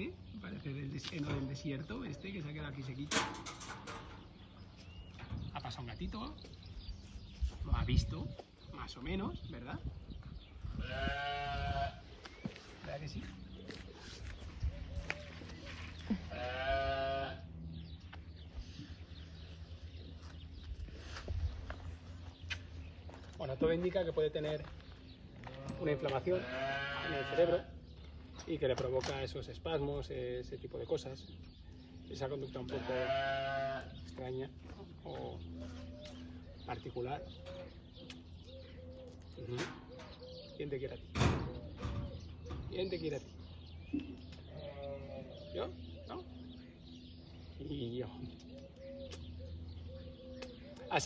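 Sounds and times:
goat bleating: 0:10.8 - 0:12.1, 0:16.0 - 0:17.4, 0:25.4 - 0:27.7, 0:32.7 - 0:34.0
dove cooing: 0:35.6 - 0:40.7, 0:41.4 - 0:42.6, 0:48.4 - 0:51.0.

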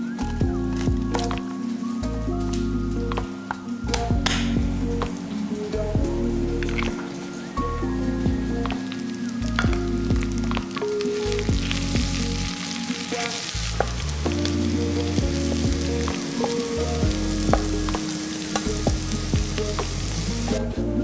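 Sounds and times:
onions sizzling in a pot: 0:07.4 - 0:20.6.

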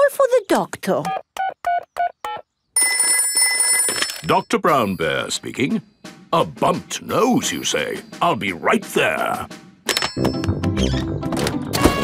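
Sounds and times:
telephone ringing: 0:02.3 - 0:05.0, 0:09.9 - 0:10.6.

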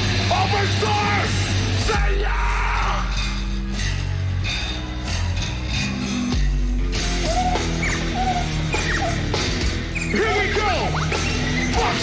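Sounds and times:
heavy rock band playing: 0:00.0 - 0:12.0
singer yelling: 0:00.3 - 0:03.2, 0:10.1 - 0:11.0.

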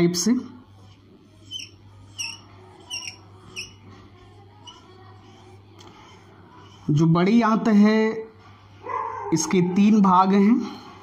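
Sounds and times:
marker squeaking on whiteboard: 0:00.7 - 0:07.4.

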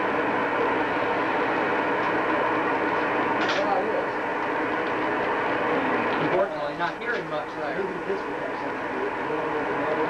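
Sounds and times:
indistinct voices talking: 0:00.7 - 0:10.0.

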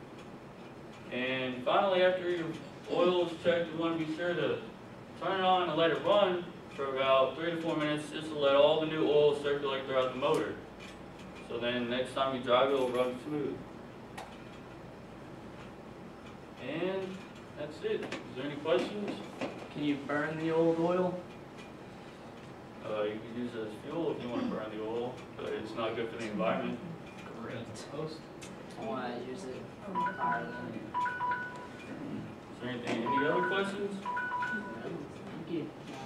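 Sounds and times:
electronic beeping tune: 0:29.9 - 0:31.9, 0:33.0 - 0:34.9.

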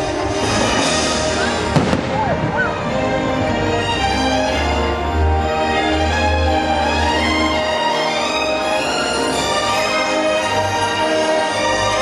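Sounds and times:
soundtrack music: 0:00.0 - 0:12.0
fireworks bursting: 0:00.5 - 0:02.9
sharp bang: 0:01.4 - 0:02.8.

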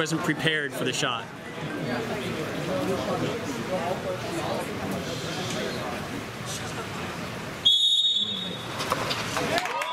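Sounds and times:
crowd chatter: 0:00.0 - 0:09.9
referee's whistle blown: 0:07.6 - 0:08.7.

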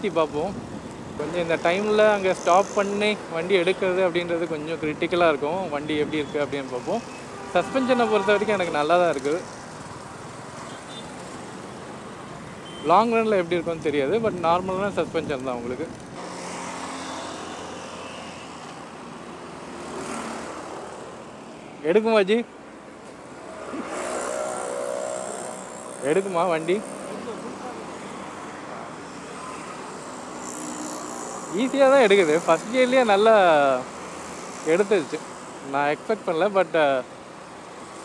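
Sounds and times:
wind and road noise: 0:00.0 - 0:38.0.

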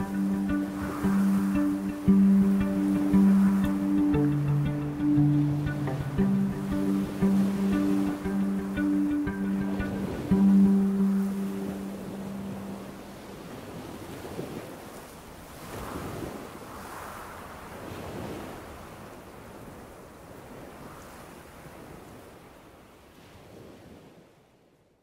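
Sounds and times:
waves on pebble beach: 0:00.0 - 0:05.1, 0:11.0 - 0:22.5
background music low note: 0:00.0 - 0:13.3.

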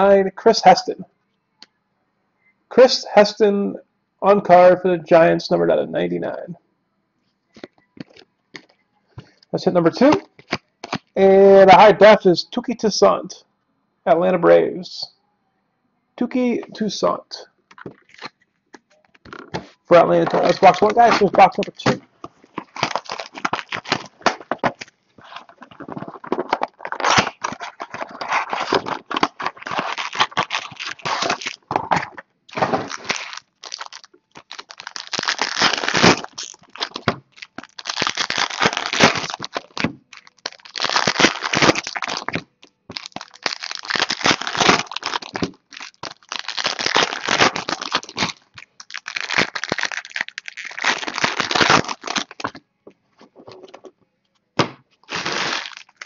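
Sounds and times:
cards handled and stacked: 0:07.5 - 0:09.3
foil wrappers crinkling and tearing: 0:20.4 - 0:52.6, 0:55.0 - 0:56.0.

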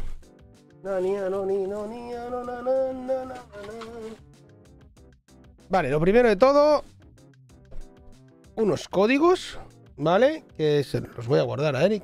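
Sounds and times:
faint background music: 0:00.0 - 0:04.8, 0:05.4 - 0:12.0
man humming a tune: 0:00.8 - 0:04.2.

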